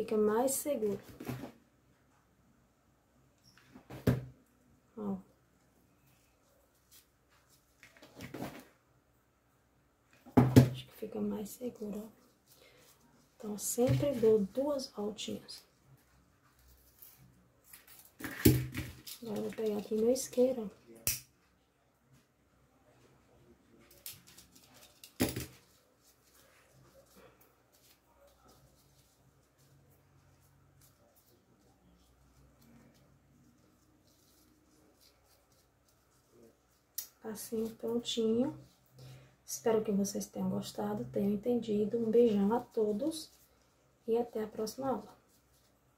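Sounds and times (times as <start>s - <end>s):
ribbon rustle: 6.0s - 8.7s, 11.6s - 21.0s, 23.8s - 39.0s, 42.4s - 45.9s.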